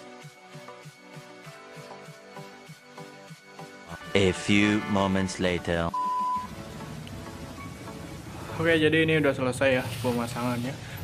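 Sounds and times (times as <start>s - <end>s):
pure test-tone beep: 5.9s - 6.5s.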